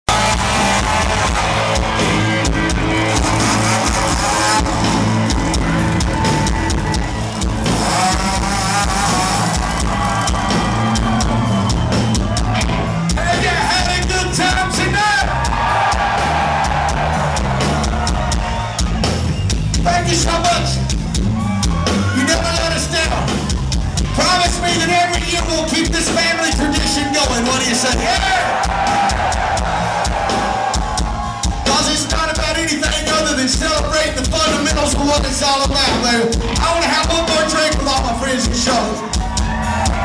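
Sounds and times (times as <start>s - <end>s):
drums: 0.0s - 40.0s.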